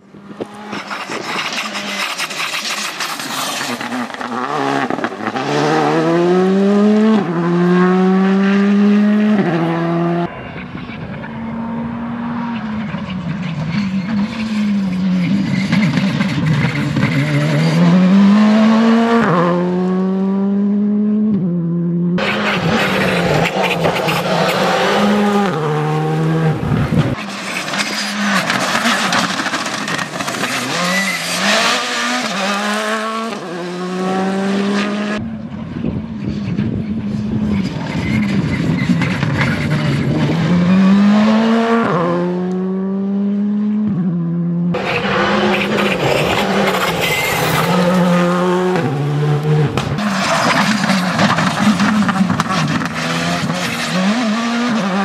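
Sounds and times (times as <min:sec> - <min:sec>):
rally car engine revving: 0:00.0 - 0:55.0
gravel spraying from tyres: 0:00.7 - 0:04.4.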